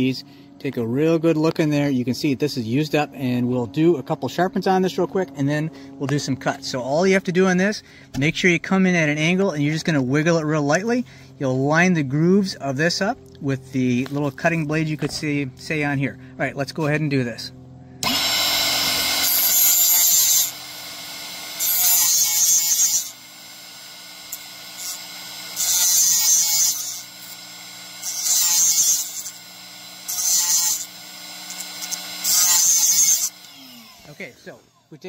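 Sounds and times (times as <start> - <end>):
high grinding of blade on wheel: 18.0 - 34.9
sharpener motor hum: 18.0 - 34.9.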